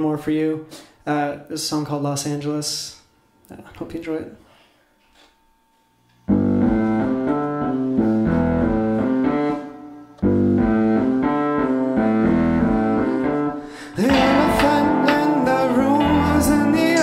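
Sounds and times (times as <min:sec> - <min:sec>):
digital piano chords over bass: 0:10.2 - 0:17.0.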